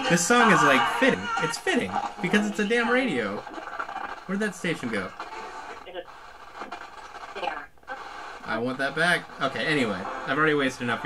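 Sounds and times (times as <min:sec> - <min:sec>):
faint broadcast voice: 0:00.0 - 0:11.0
radio hiss: 0:00.0 - 0:11.0.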